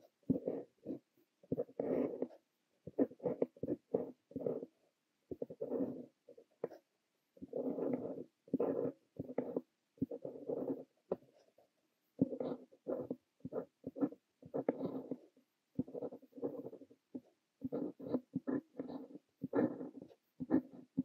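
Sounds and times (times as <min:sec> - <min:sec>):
pen scratching on paper: 0:00.0 - 0:21.0.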